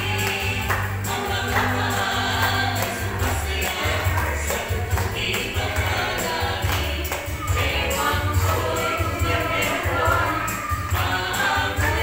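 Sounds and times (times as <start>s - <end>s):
voices singing gospel song: 0.0s - 12.0s.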